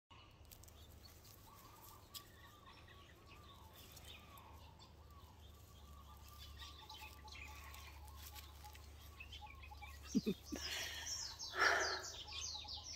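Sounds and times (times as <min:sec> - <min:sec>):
distant birds calling: 0:00.1 - 0:12.9.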